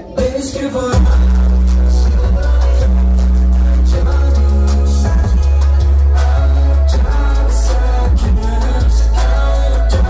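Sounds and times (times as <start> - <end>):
deep bass notes: 0.9 - 10.0.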